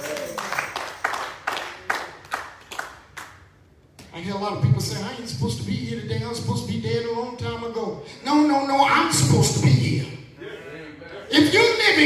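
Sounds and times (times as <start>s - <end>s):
sharp handclaps: 0.0s - 3.5s.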